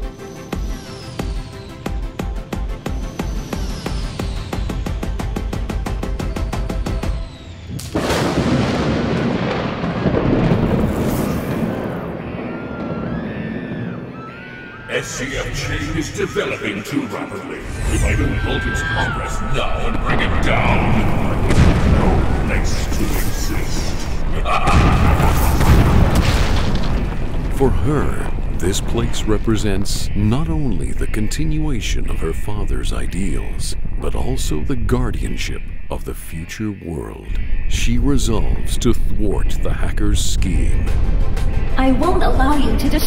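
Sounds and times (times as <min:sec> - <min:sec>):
thunder crash and rumble: 0:07.5 - 0:14.8, 0:17.6 - 0:35.9.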